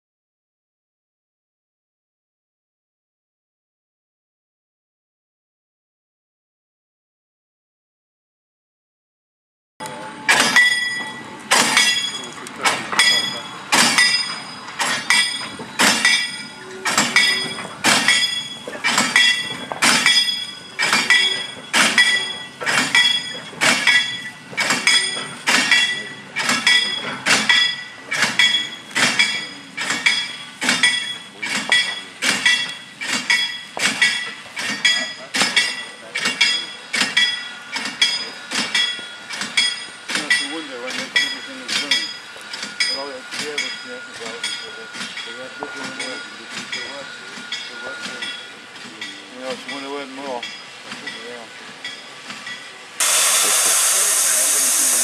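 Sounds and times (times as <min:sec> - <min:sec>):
railway wagons moving slowly: 0:09.8 - 0:55.0
metallic ringing clink: 0:10.3 - 0:52.8.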